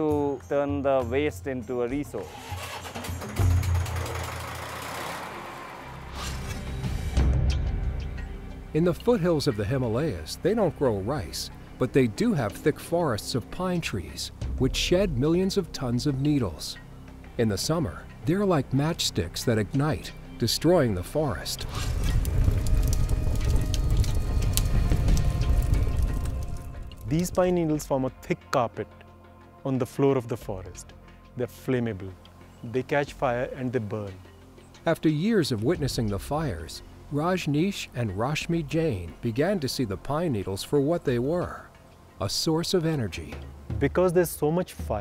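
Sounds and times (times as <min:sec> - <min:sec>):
background music: 0:00.0 - 0:45.0
fire rumbling: 0:17.6 - 0:27.8
fire crackling and popping: 0:19.9 - 0:27.6.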